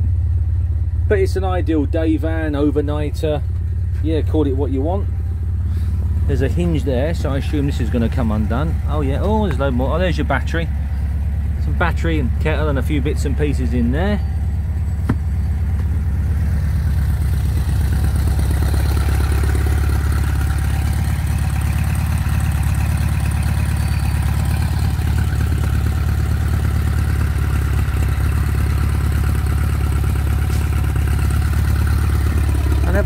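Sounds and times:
engine idling: 0:00.0 - 0:33.0.

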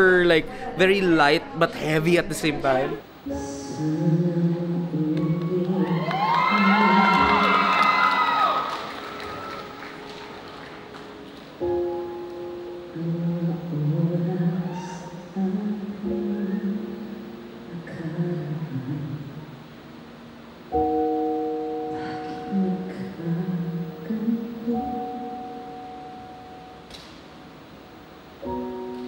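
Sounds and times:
piano chords: 0:02.9 - 0:29.0
woman singing a slow ballad: 0:03.3 - 0:08.3, 0:12.7 - 0:19.4, 0:21.8 - 0:26.4.

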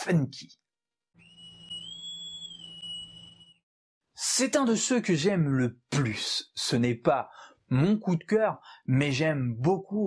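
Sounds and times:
whistle-like high tone: 0:01.2 - 0:03.7.

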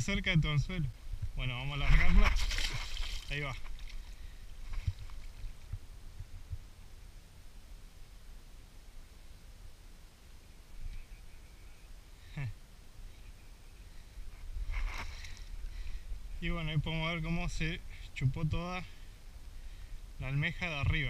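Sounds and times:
low steady rumble: 0:00.0 - 0:21.0.

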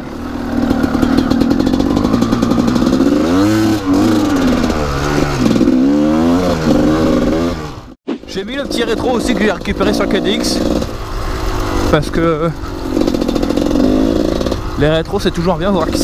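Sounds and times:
two-stroke motorcycle engine revving: 0:00.0 - 0:16.0.

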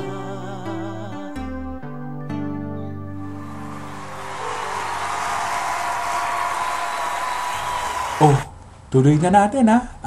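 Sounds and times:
held chord of worship song: 0:00.0 - 0:07.0
applause: 0:03.4 - 0:08.5.

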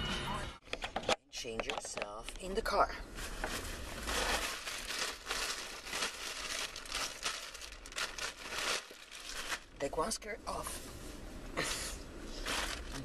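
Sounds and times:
clothing rustling: 0:03.1 - 0:09.7, 0:12.3 - 0:13.0.

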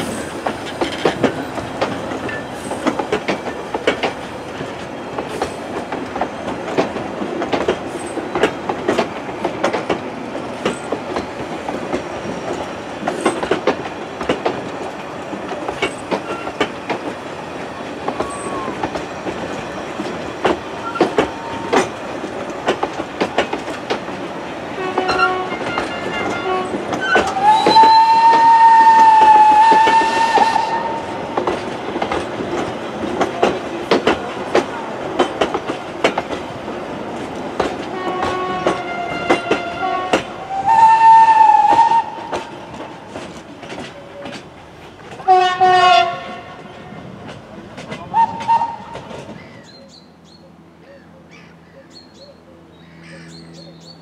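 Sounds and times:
train wheels clicking over rail joints: 0:00.0 - 0:50.0
steam train whistle: 0:24.8 - 0:31.1, 0:38.0 - 0:42.4, 0:45.2 - 0:46.6, 0:48.1 - 0:49.0.

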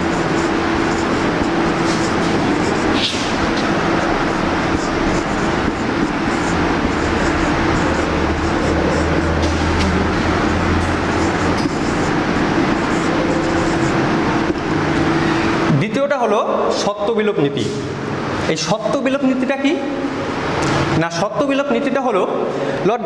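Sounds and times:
machine humming: 0:00.0 - 0:15.8.

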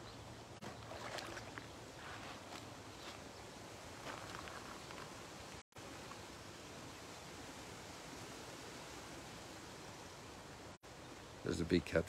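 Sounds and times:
faint small splashes: 0:00.6 - 0:02.6
water lapping among rocks: 0:00.6 - 0:02.7.

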